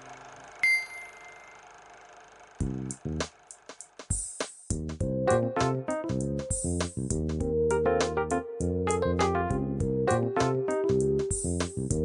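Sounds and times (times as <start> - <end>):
high bell-like ding: 0.6 - 1.6.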